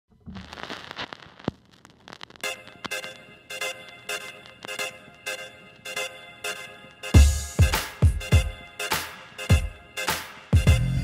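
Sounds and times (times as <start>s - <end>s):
crackling hissing noise: 0.1s - 8.0s.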